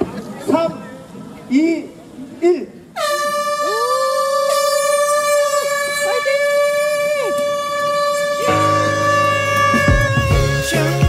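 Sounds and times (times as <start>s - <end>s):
air horn blast: 3.0s - 11.0s.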